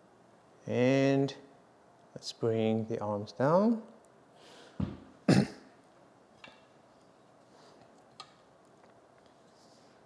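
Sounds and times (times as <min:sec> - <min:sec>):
man clearing his throat: 0:05.3 - 0:05.7.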